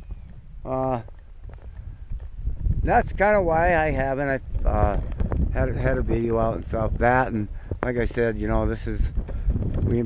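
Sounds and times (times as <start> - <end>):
low wind rumble on microphone: 0.0 - 10.0.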